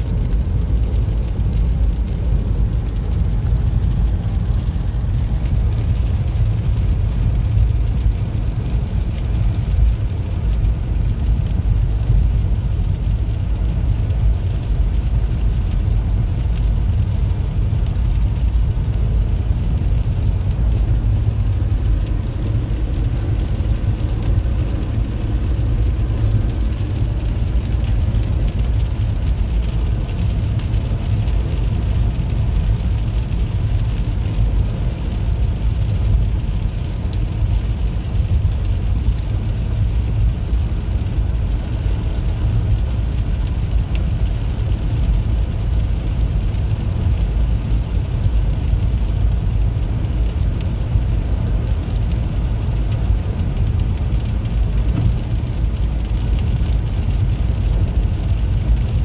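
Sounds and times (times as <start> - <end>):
road and tyre noise in car: 0.0 - 59.0.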